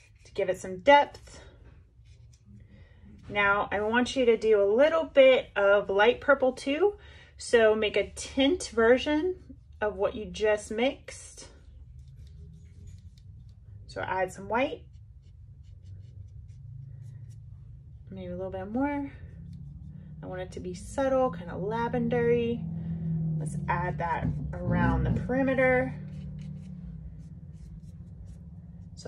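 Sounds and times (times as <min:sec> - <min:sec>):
steady low hum: 0:00.0 - 0:29.0
paintbrush strokes on paper: 0:11.6 - 0:18.1, 0:18.7 - 0:20.1, 0:25.4 - 0:29.0.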